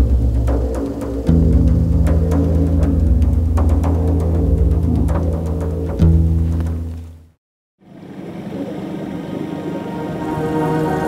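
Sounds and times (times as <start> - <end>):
background music: 0.0 - 7.2, 9.4 - 11.0
held layered tones: 7.9 - 11.0.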